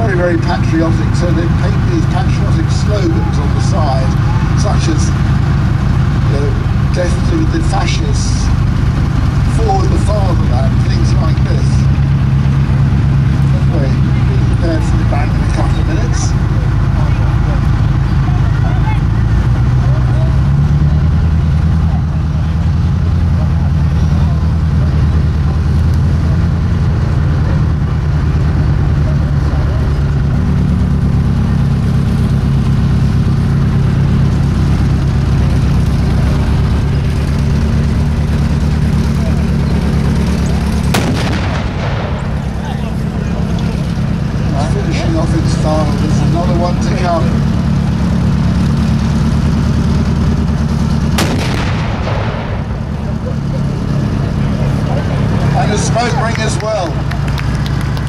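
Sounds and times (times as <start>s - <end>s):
tank diesel engine running: 0.0s - 58.0s
tank gun firing bang: 40.8s - 42.8s, 51.1s - 53.1s.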